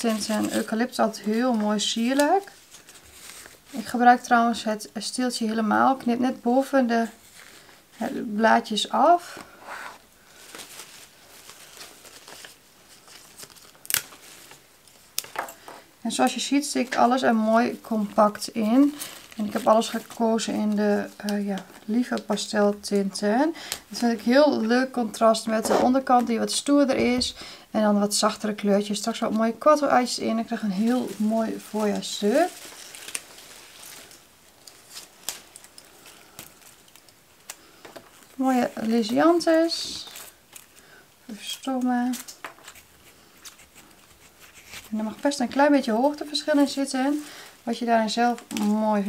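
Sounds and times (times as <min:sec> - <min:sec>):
foliage rustling and crinkling: 0:00.0 - 0:04.6, 0:10.2 - 0:15.4, 0:16.1 - 0:23.1, 0:28.9 - 0:49.0
foliage rustling: 0:10.2 - 0:14.6, 0:30.2 - 0:41.0.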